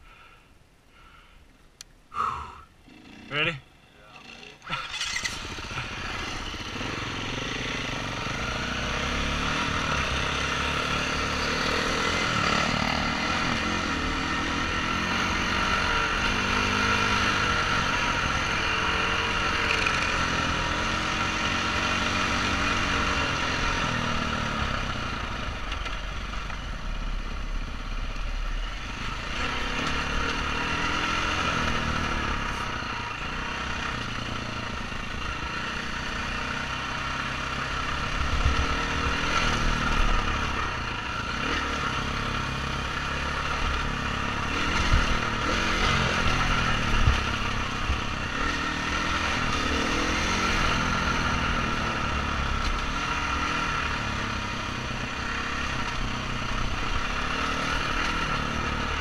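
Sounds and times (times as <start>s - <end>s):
motorcycle engine revving: 2.8s - 59.0s.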